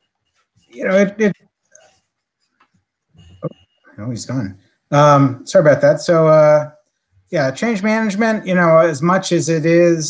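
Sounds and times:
faint high steady tone: 3.1s - 8.4s.

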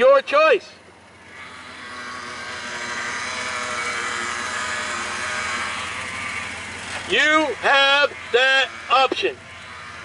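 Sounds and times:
car driving past: 1.1s - 10.0s.

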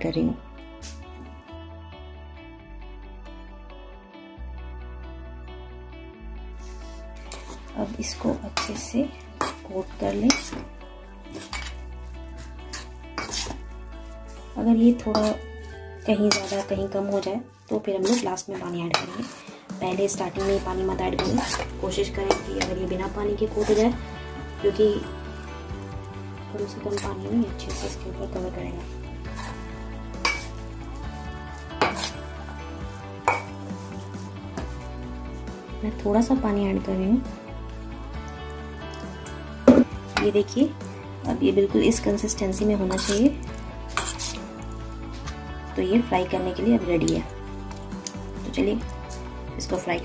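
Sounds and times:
spoon scraping a steel bowl: 6.6s - 10.7s, 11.3s - 26.0s, 26.6s - 34.8s, 42.8s - 45.4s
spoon clinking against metal bowl: 8.5s - 10.7s, 15.0s - 17.3s, 18.9s - 19.5s, 20.4s - 22.8s, 30.2s - 30.6s, 31.8s - 32.3s, 33.2s - 33.8s, 42.9s - 43.3s.

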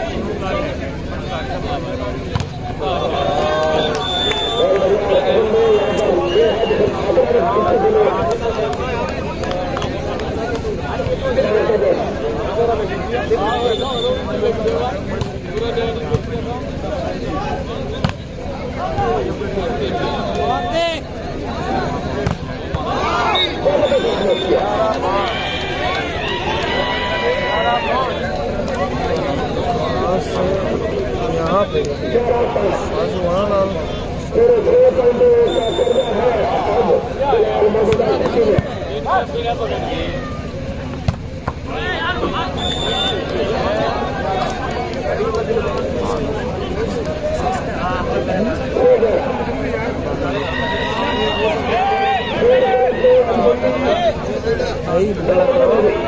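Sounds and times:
players and spectators shouting: 0.0s - 56.0s.

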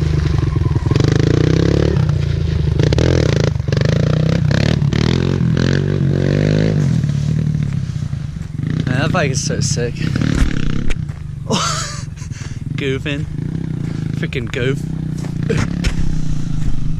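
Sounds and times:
dirt bike engine revving: 0.0s - 16.9s.

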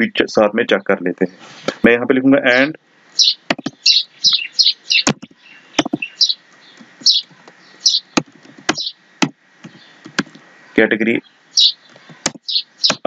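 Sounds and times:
small bird chirping: 0.7s - 13.0s.

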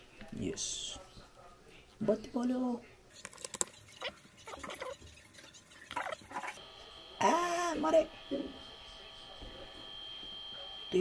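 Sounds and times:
faint high whine: 6.6s - 11.0s.

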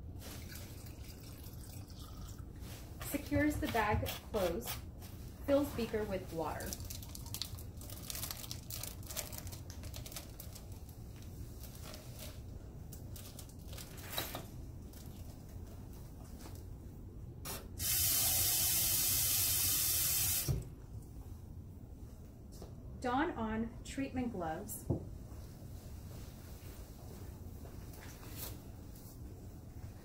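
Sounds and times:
plastic bag rustling: 5.0s - 14.2s.

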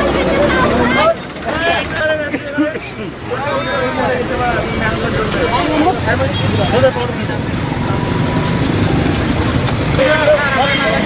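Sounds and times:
traffic rumble: 0.0s - 11.0s
men talking: 0.4s - 8.2s, 9.7s - 11.0s.

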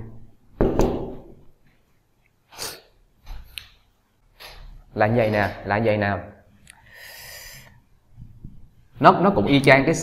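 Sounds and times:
quiet breaths: 6.7s - 8.0s.

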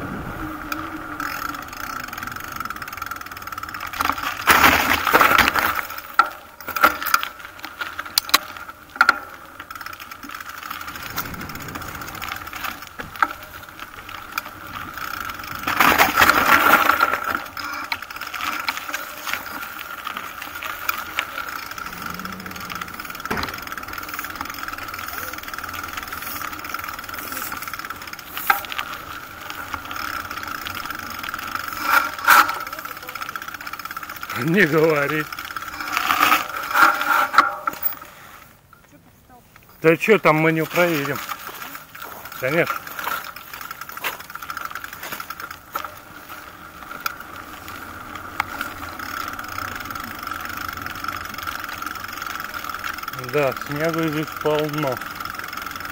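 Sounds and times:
wind on microphone: 0.0s - 1.2s, 10.9s - 13.2s
bicycle rattling and humming: 0.0s - 55.9s.

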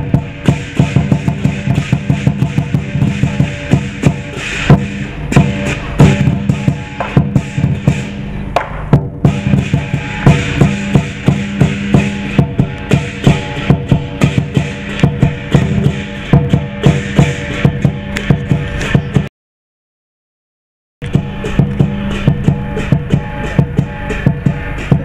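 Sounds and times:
cymbals clashing: 0.0s - 19.3s, 21.0s - 25.0s
large drum beaten quickly: 0.0s - 19.3s, 21.0s - 25.0s.

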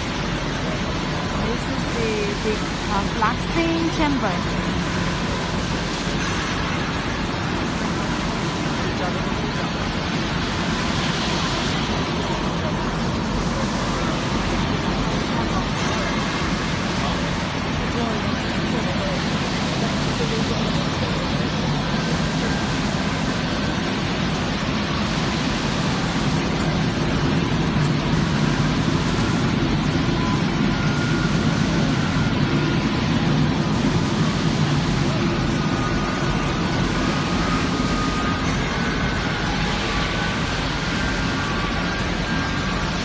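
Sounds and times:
furnace machinery noise: 0.0s - 43.0s.

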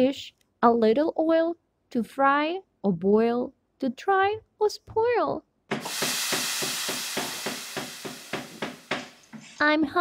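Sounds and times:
fish sizzling in a pan: 5.8s - 9.3s.

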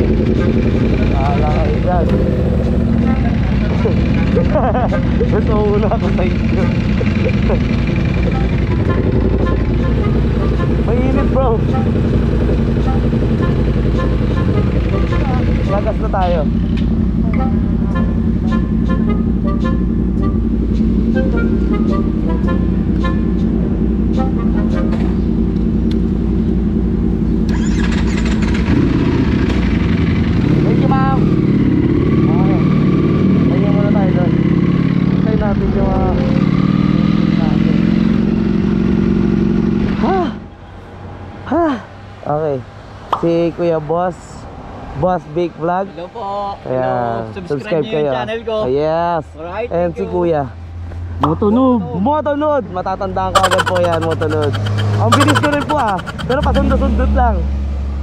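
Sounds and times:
motorcycle engine revving: 0.0s - 40.2s, 53.3s - 58.0s.

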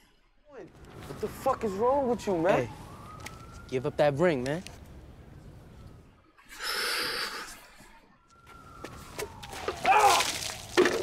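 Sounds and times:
paint splashing: 9.3s - 11.0s.

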